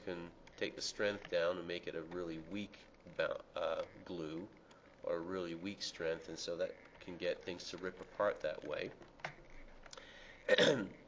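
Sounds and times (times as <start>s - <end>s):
man clearing his throat: 10.5s - 11.0s.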